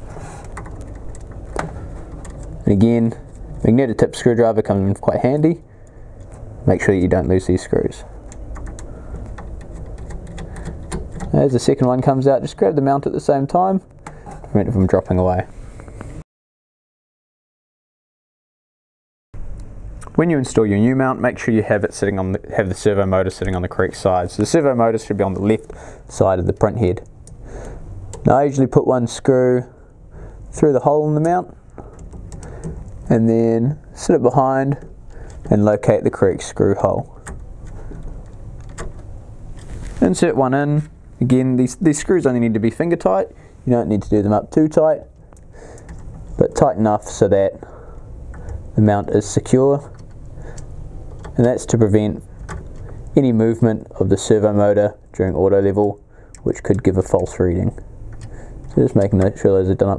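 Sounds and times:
screwdriver handling noise: 0.2 - 3.6.

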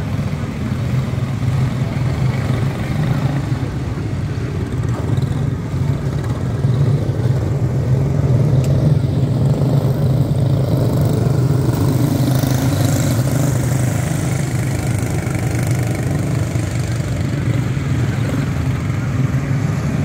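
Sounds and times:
race car engines droning: 0.0 - 20.0.

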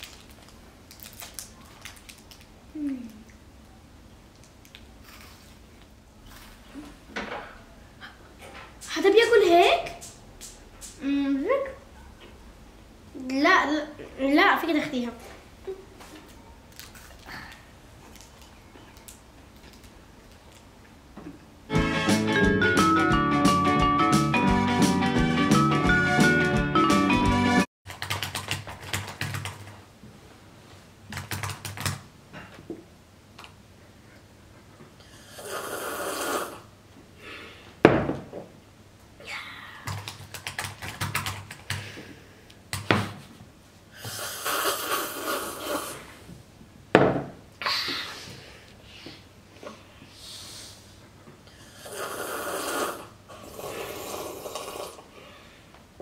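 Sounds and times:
music: 21.7 - 27.7
laptop keyboard typing: 27.9 - 29.8, 31.1 - 32.0, 39.9 - 41.8
slurping sip from a mug: 35.3 - 36.6, 44.0 - 46.2, 51.8 - 55.1.

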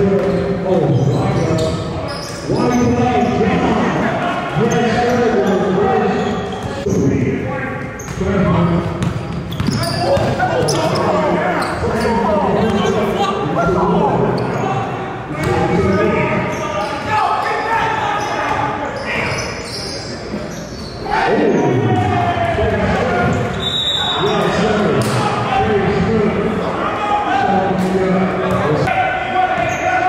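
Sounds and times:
people chattering: 0.0 - 30.0
basketball bouncing on gym floor: 8.8 - 10.8.

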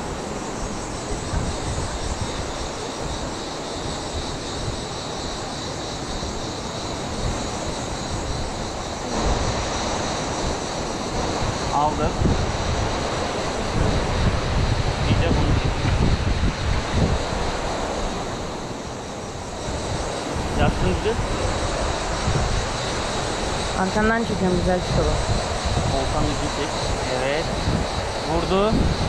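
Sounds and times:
wind rumble on microphone: 0.0 - 29.0.

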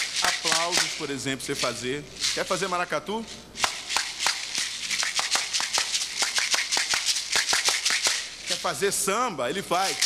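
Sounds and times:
bead shakers rattling: 0.0 - 10.0.

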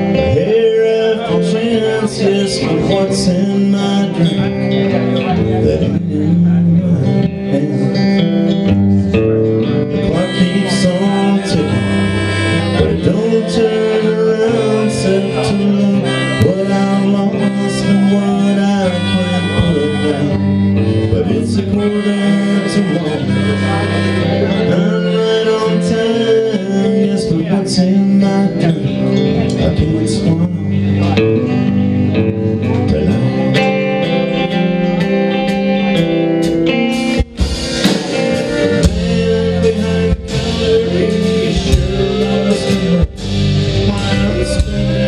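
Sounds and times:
drums: 0.0 - 45.0
electric guitar: 0.0 - 45.0
harmonica lead: 0.0 - 45.0
pedal steel guitar: 0.0 - 45.0.

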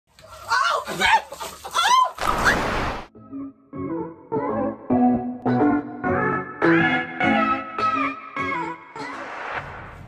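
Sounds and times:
woman shrieking: 0.5 - 2.2.

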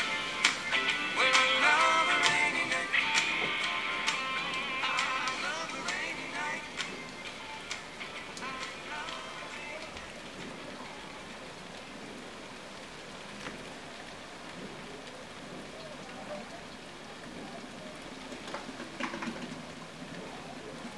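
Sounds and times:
steady rain falling: 0.0 - 20.9.

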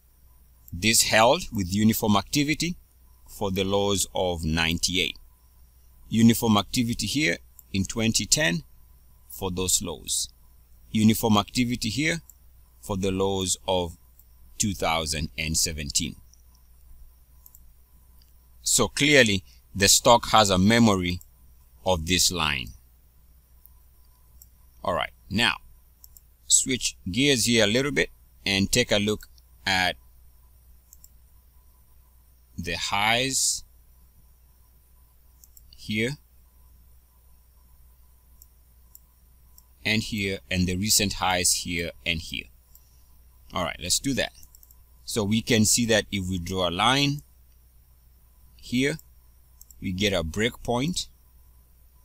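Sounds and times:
low steady hum: 0.0 - 52.0
person speaking: 0.7 - 5.2, 6.1 - 8.7, 9.3 - 10.3, 10.9 - 14.0, 14.6 - 16.2, 18.6 - 22.8, 24.8 - 25.7, 26.4 - 30.0, 32.6 - 33.7, 35.6 - 36.2, 39.8 - 42.5, 43.5 - 47.3, 49.7 - 51.1
faint computer mouse clicks: 16.3 - 18.4, 23.6 - 24.6, 26.0 - 26.3, 30.9 - 31.2, 35.4 - 35.8, 38.4 - 39.7, 42.7 - 42.9, 44.4 - 44.8, 49.0 - 49.8.

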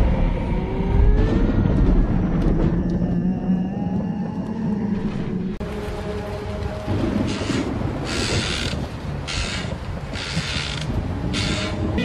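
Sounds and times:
low dark drone: 0.0 - 9.6.

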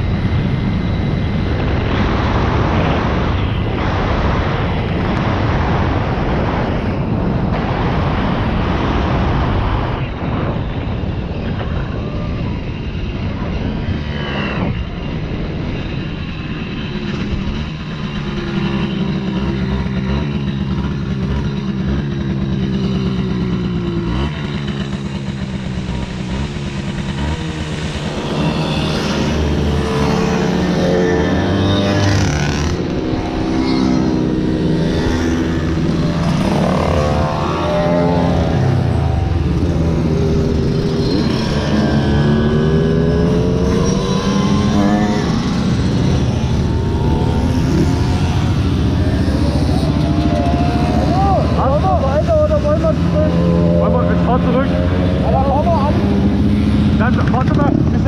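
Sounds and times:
moped engine running: 16.8 - 58.0
mopeds revving: 16.8 - 58.0.

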